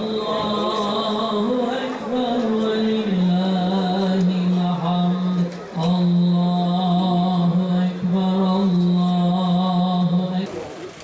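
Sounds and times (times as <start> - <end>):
men chanting in unison: 0.0 - 10.5.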